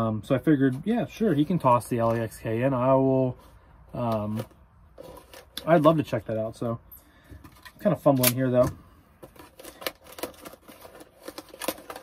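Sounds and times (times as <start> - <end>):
cardboard and tape crinkling: 0.6 - 6.1, 7.4 - 12.0
knife cutting packing tape: 9.3 - 12.0.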